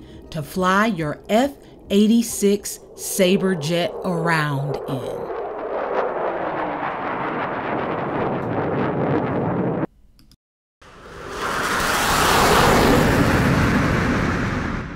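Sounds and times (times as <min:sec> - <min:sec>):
jet aircraft roar: 0:00.0 - 0:09.9, 0:10.9 - 0:14.9.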